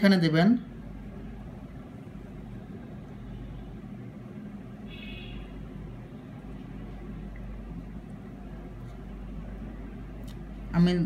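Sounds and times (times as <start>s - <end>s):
low background hum with hiss: 0.0s - 11.0s.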